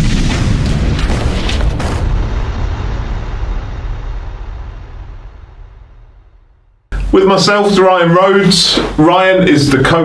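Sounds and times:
deep cinematic boom: 0:00.0 - 0:07.1
low rumble: 0:00.0 - 0:07.6.

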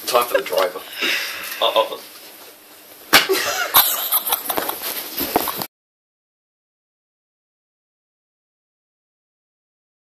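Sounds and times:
breathy laughter: 0:03.3 - 0:04.8.

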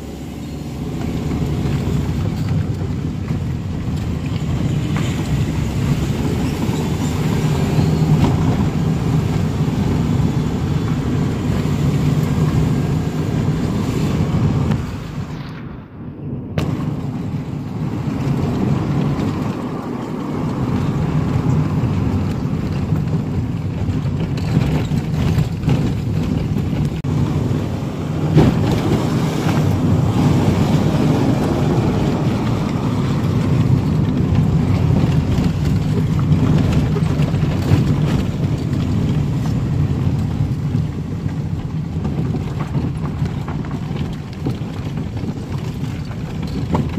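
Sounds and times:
car engine and road rumble: 0:00.0 - 0:46.9.

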